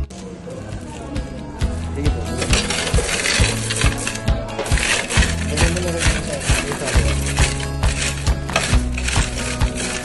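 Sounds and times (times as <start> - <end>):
background music with a beat: 1.2 - 10.0
coins pouring into a tray: 2.4 - 10.0.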